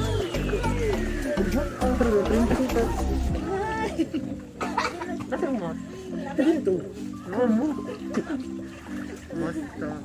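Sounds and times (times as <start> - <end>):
background music: 0.0 - 10.0
people talking and calling out: 0.0 - 10.0.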